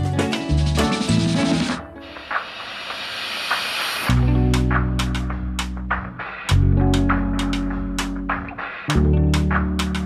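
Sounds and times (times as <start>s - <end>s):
steady hiss: 1.6s - 4.2s.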